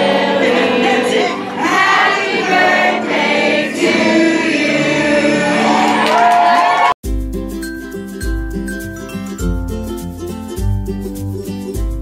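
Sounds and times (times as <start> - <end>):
group of people singing a celebration song: 0.0 - 6.0
music: 0.0 - 6.0, 7.0 - 12.0.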